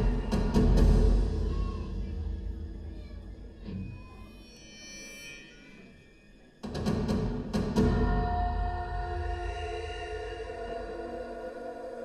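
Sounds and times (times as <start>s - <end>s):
drum and cymbal hits: 0.0s - 3.6s, 6.6s - 10.6s.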